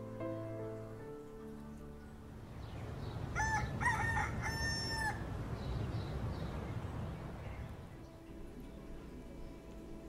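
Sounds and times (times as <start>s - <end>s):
rooster crowing: 3.3s - 5.3s.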